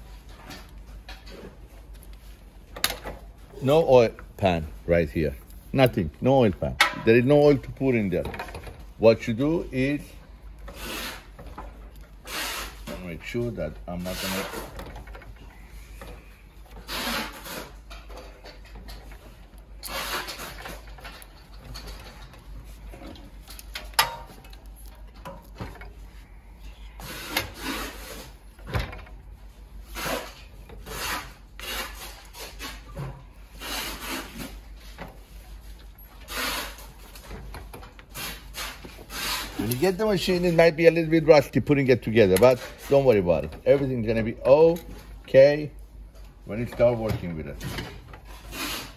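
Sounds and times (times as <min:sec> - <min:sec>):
sewing machine head rubbing and scraping: 0:09.2 - 0:23.4, 0:27.0 - 0:28.5, 0:29.8 - 0:37.4, 0:38.0 - 0:44.7, 0:48.2 - 0:48.9.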